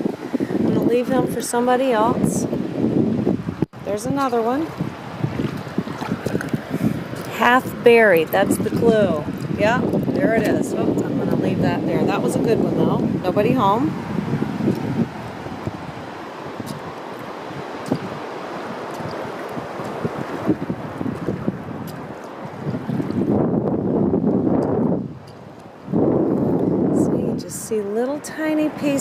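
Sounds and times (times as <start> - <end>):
wind buffeting microphone: 0.0 - 29.0
shallow water around wading feet: 3.8 - 27.0.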